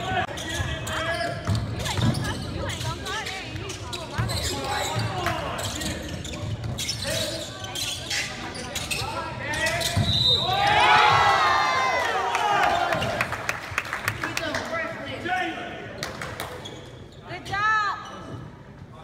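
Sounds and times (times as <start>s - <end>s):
sneakers squeaking: 0.0s - 11.3s, 16.0s - 19.0s.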